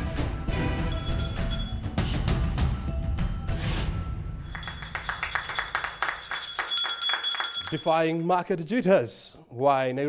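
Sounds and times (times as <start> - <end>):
hand bell ringing: 0.8 - 2.0, 4.5 - 8.3
people clapping: 4.5 - 8.0.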